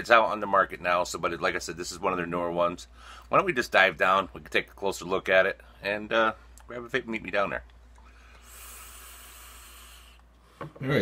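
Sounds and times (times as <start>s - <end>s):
airy hiss of vape inhale: 8.1s - 10.4s.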